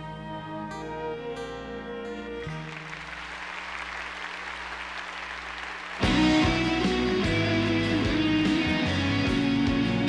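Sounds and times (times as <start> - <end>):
audience applause: 2.5 - 7.1.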